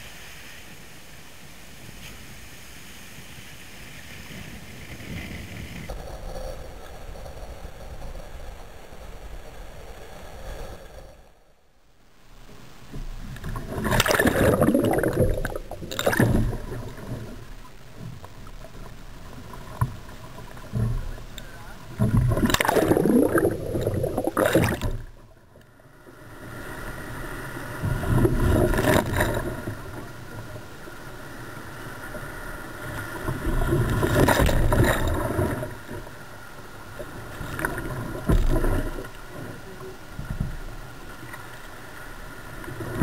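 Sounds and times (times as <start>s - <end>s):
seawater rushing over kayak deck: 13.5s - 17.5s, 19.7s - 25.1s.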